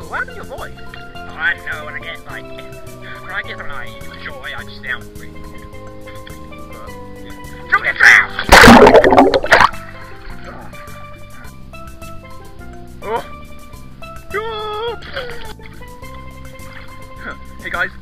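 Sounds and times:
background music: 0.0 - 18.0
pool water splashing: 8.4 - 9.9.

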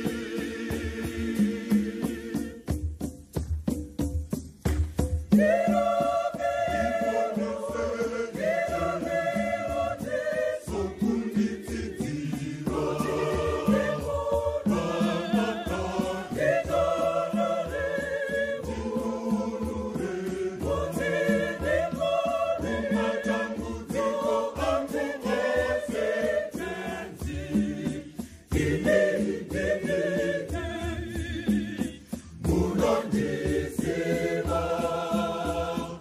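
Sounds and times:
choir singing a hymn in harmony: 0.0 - 2.8, 5.3 - 36.0
hand drums beating: 0.0 - 36.0.

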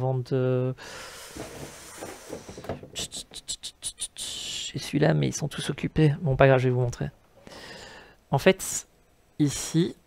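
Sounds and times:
rustling of objects: 1.2 - 3.2.

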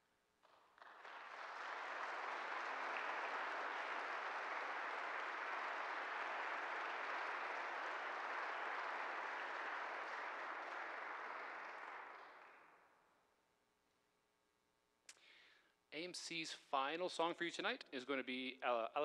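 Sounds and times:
audience applauding: 0.4 - 12.9.

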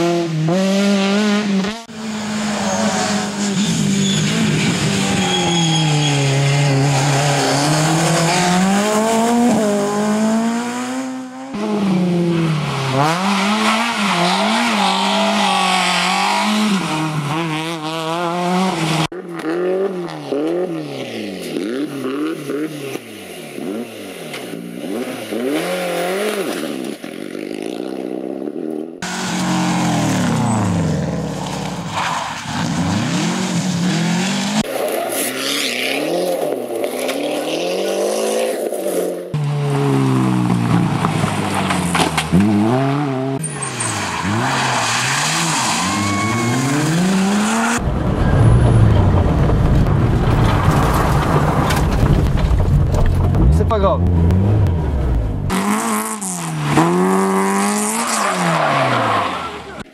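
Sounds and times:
rally car engines revving: 0.0 - 27.0, 29.0 - 59.9.

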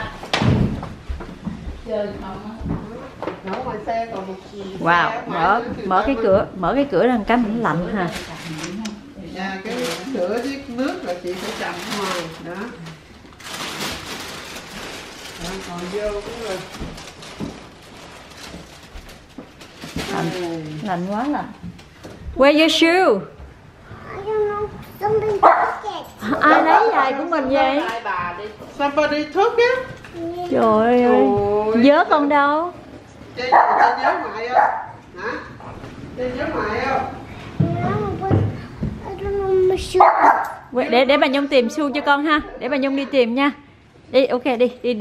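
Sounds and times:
plastic bag rustling: 7.6 - 22.1.

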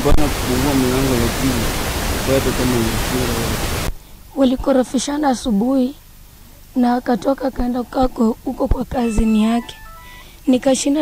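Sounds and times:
loud steady hiss: 0.0 - 4.0
woman speaking: 4.4 - 6.0, 6.8 - 11.0.

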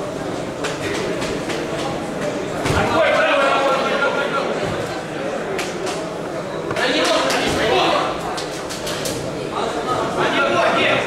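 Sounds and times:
indistinct voices echoing in hall: 0.0 - 11.0.

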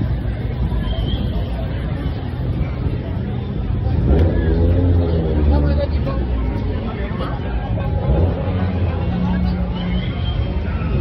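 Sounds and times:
crowd chatter: 0.0 - 11.0
low engine rumble: 0.0 - 11.0
passing car traffic: 0.0 - 11.0.

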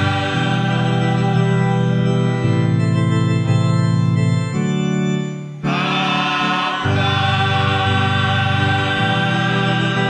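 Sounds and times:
voices singing a hymn: 0.0 - 2.1, 5.6 - 10.0
organ: 0.0 - 10.0.

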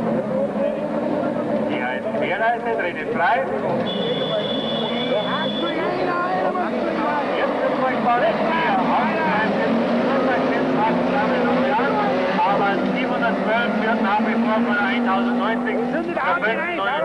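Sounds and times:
race car engines revving: 0.0 - 17.0.

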